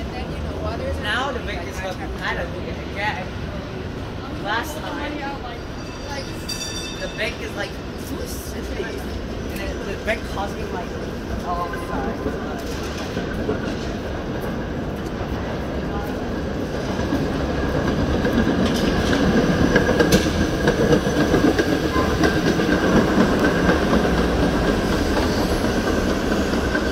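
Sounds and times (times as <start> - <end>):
streetcar passing by: 0.0 - 26.9
wheels clicking on rails: 6.2 - 26.9.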